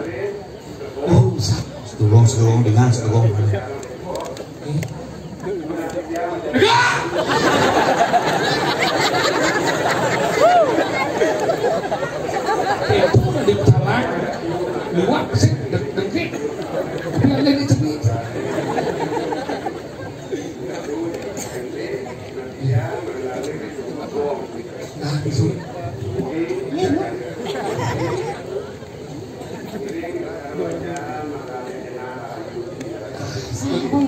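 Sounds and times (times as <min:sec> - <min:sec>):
man talking over loudspeakers: 0:00.0 - 0:04.8, 0:12.9 - 0:16.5, 0:17.1 - 0:18.4, 0:20.7 - 0:27.3
audience chatter: 0:00.0 - 0:34.0.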